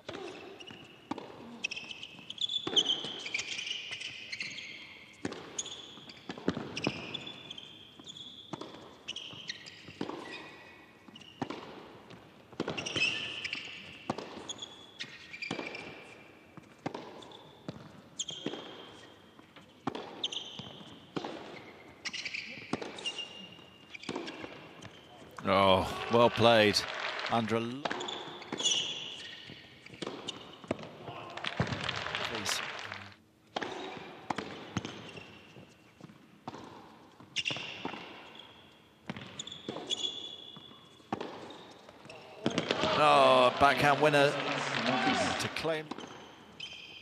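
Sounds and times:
shoes squeaking on court: 0:00.0 - 0:25.4, 0:27.8 - 0:31.0, 0:33.5 - 0:42.8, 0:44.4 - 0:47.0
tennis ball struck and bouncing: 0:05.2 - 0:05.6, 0:08.5 - 0:10.4, 0:11.4 - 0:13.1, 0:14.1 - 0:14.5, 0:16.6 - 0:18.8, 0:19.8 - 0:21.7, 0:33.5 - 0:35.1, 0:40.6 - 0:41.5.

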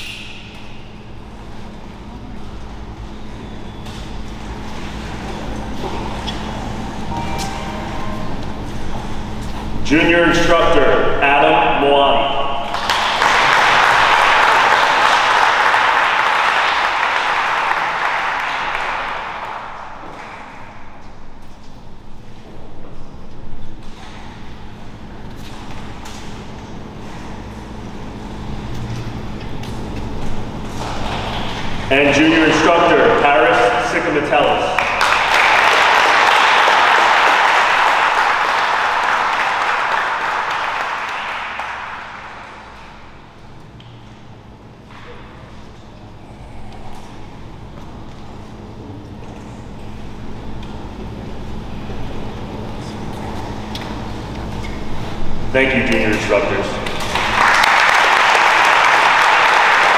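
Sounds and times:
audience applauding: 0:12.6 - 0:20.6, 0:34.7 - 0:43.2, 0:56.8 - 0:59.9.

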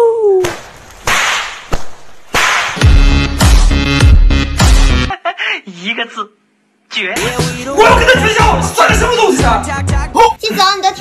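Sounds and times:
sharp crack: 0:00.4 - 0:03.7
music with heavy beat: 0:02.8 - 0:05.1, 0:07.2 - 0:10.2.

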